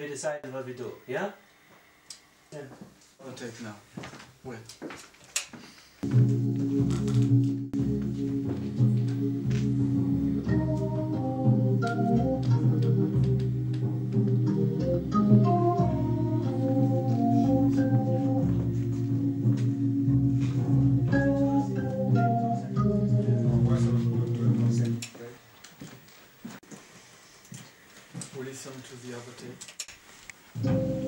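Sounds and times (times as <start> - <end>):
melody of short notes: 6.0 - 25.0, 30.6 - 31.0
pulsing bass notes: 6.0 - 25.0, 30.6 - 31.0
organ chords: 6.0 - 25.1, 30.6 - 31.0.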